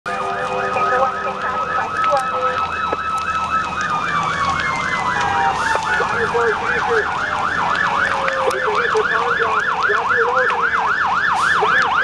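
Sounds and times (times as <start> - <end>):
siren yelping: 0.1 - 12.0
steady siren tone dropping in pitch: 0.1 - 12.0.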